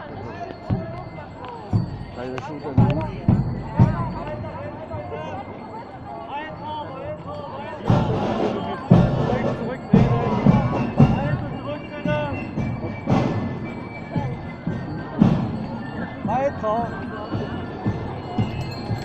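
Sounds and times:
parade band drum beats: 0.0 - 5.6, 6.5 - 19.0
crowd chatter: 0.0 - 19.0.

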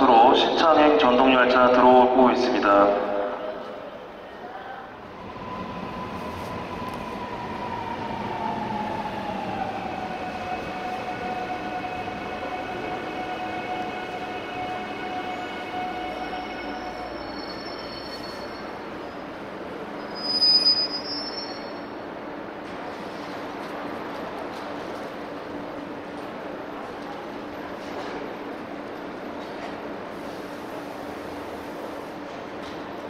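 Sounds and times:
loud high squeal: 16.1 - 18.8, 20.0 - 21.9.

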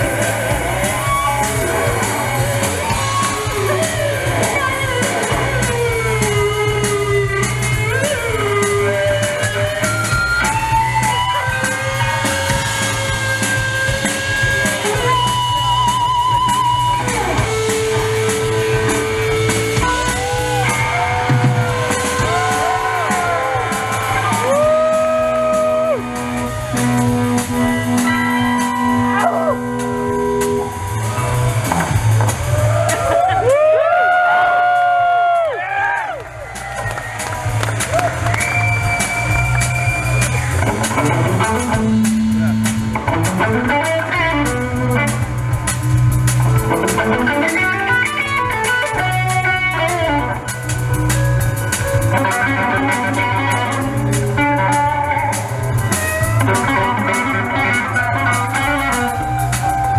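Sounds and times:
bass guitar: 0.0 - 59.9
drum kit cymbals: 0.0 - 59.9
electric guitars: 0.0 - 59.9.

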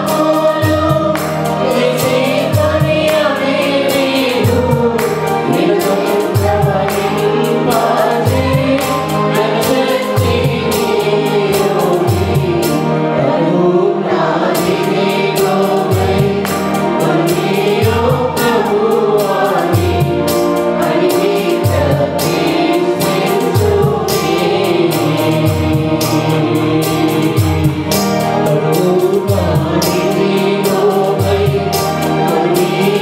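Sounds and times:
electronic keyboard: 0.0 - 33.0
mixed choir singing worship song: 0.0 - 33.0.

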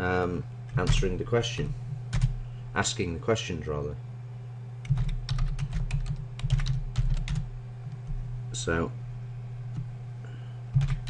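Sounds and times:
typing on computer keyboard: 4.9 - 7.4, 10.8 - 11.0.

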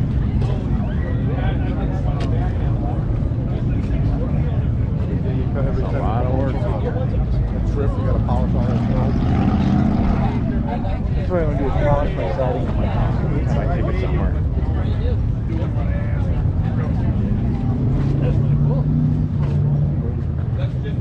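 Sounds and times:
bystanders talking: 0.0 - 21.0
low rumble: 0.0 - 21.0.

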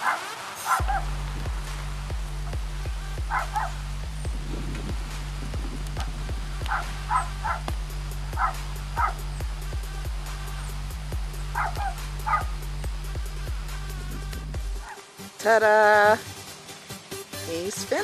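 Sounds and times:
dog barking: 0.0 - 1.1, 3.3 - 3.8, 6.7 - 7.7, 8.3 - 9.3, 11.5 - 12.6, 14.8 - 15.0
background music with deep bass: 0.0 - 18.0.

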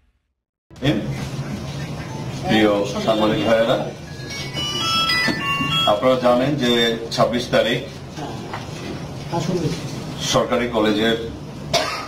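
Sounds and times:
electronic chime melody: 4.0 - 6.6.

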